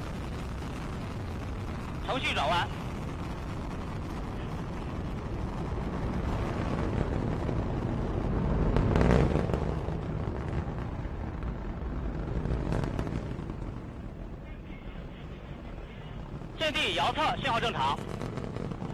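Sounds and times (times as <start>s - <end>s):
rocket engines roaring: 0.0s - 18.9s.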